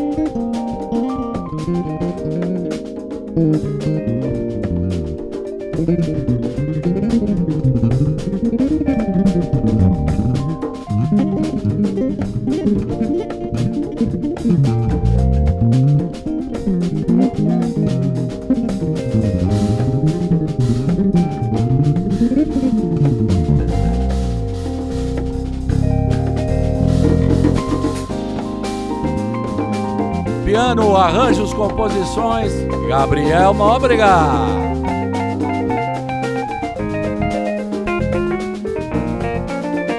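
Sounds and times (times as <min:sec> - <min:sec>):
band holding chords: 0:00.0 - 0:39.9
drums: 0:00.0 - 0:39.9
electric bass solo runs: 0:00.0 - 0:39.9.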